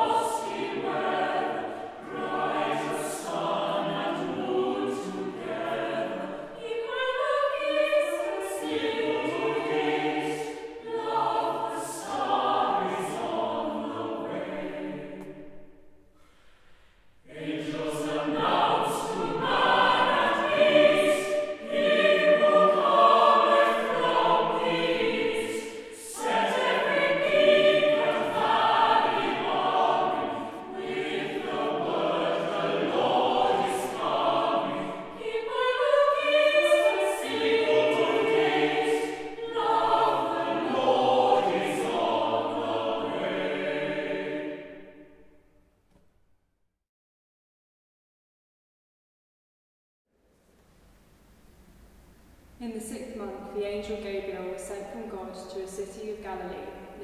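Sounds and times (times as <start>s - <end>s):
choir singing a carol: 0.0s - 16.3s, 17.2s - 45.6s, 54.2s - 57.0s.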